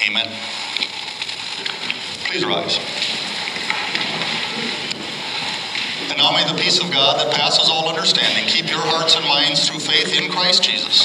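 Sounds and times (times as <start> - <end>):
congregation rustling and shuffling: 0.0 - 11.0.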